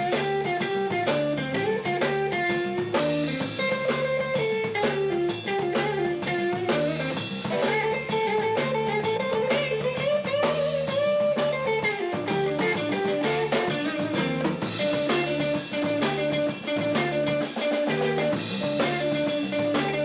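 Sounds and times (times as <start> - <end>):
bass guitar: 0.0 - 20.0
drum kit steady beat: 0.0 - 20.0
electric guitar sliding lead: 0.0 - 20.0.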